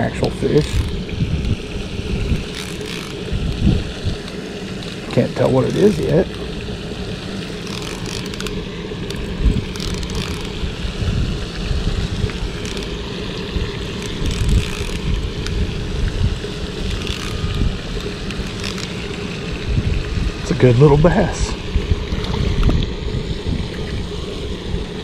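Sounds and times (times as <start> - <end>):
wind buffeting microphone: 0.0 - 7.2, 8.3 - 18.7, 19.4 - 25.0.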